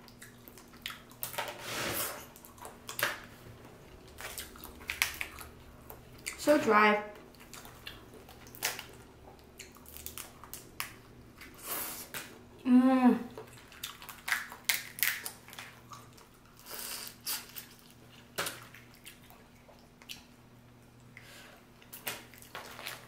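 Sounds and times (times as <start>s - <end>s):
chewing: 0.0s - 1.4s, 2.3s - 3.3s, 4.0s - 6.4s, 7.2s - 12.3s, 13.3s - 23.0s
crawfish shells cracking: 4.1s - 6.3s, 7.3s - 11.2s, 13.4s - 16.3s
person humming mmm: 12.6s - 13.3s.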